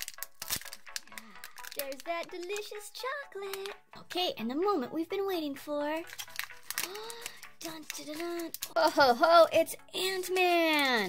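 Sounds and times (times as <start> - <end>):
wrapper crinkling and crackling: 0.0 - 3.8, 6.0 - 9.4, 10.1 - 11.0.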